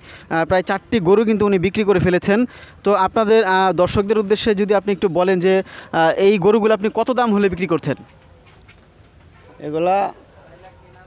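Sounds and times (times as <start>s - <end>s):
faint background noise: 0.0s - 11.0s
man speaking: 0.3s - 8.1s, 9.5s - 11.0s.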